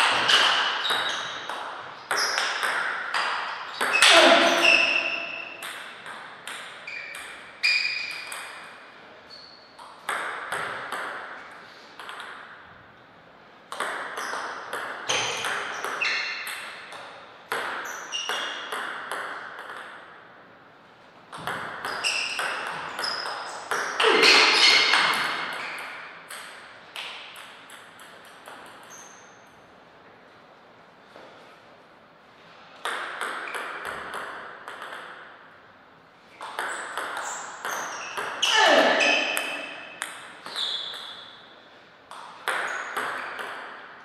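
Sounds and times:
table tennis ball hits: 0.0s - 8.8s, 9.8s - 12.6s, 13.7s - 20.2s, 21.3s - 29.3s, 32.8s - 35.6s, 36.4s - 41.4s, 42.1s - 44.0s.

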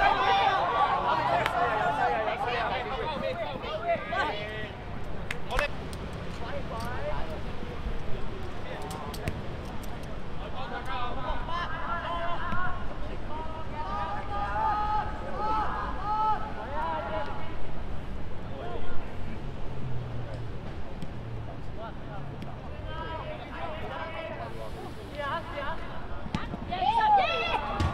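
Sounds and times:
voices shouting: 0.0s - 4.4s, 26.7s - 27.9s.

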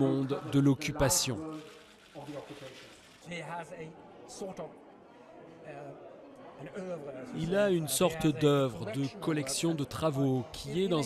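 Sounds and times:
quiet voices in large room: 0.0s - 11.0s.

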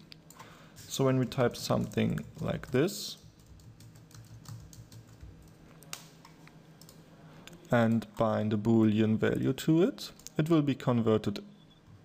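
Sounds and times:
keyboard typing clicks: 1.8s - 7.0s.

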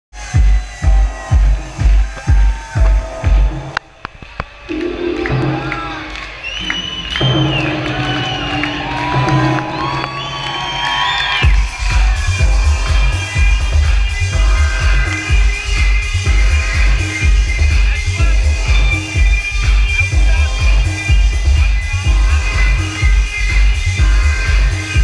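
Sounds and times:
kick drum beat: 0.1s - 3.8s, 11.4s - 25.0s
crowd cheering: 0.1s - 25.0s
electronic dance music: 0.1s - 25.0s
held synth chords: 4.7s - 10.5s, 11.4s - 25.0s.

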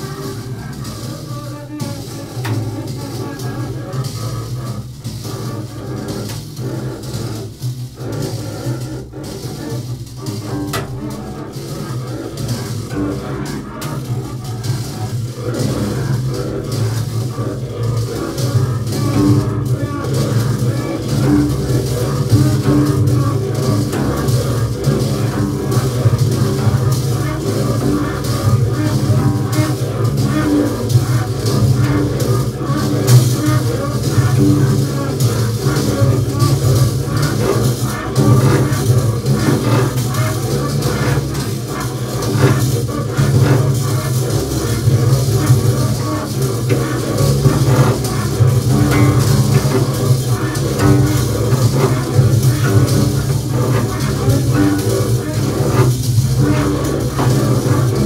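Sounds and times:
low bowed double bass drone: 0.0s - 58.0s
scratchy clicking string sounds: 0.0s - 58.0s.

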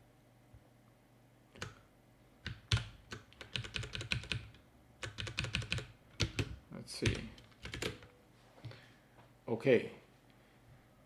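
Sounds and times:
computer keyboard keystrokes: 1.6s - 8.1s.

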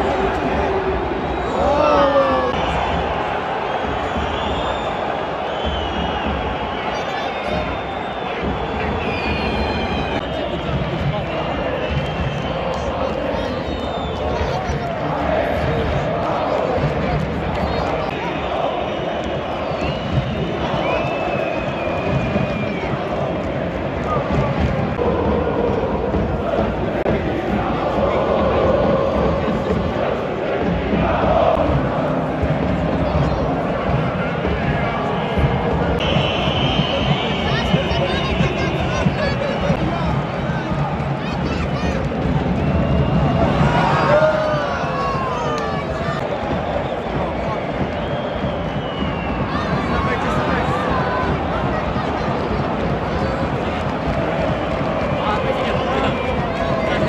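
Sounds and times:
stadium crowd chanting and shouting: 0.0s - 57.0s.

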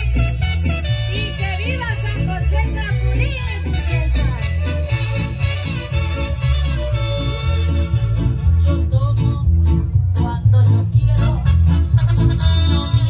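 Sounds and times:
music with deep bass line: 0.0s - 13.0s.

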